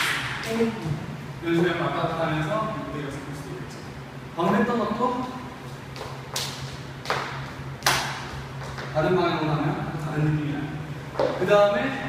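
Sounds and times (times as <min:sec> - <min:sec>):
steady low hum: 0:00.0 - 0:12.0
hand claps: 0:06.0 - 0:08.9.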